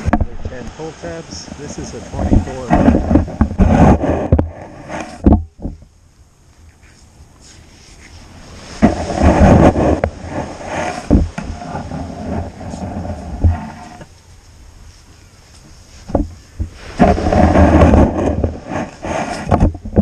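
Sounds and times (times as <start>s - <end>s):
rushing scraping sand: 0.0s - 5.8s, 6.7s - 20.0s.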